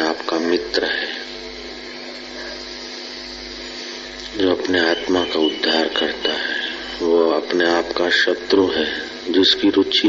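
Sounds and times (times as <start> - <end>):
faint constant hum: 0.0 - 10.0.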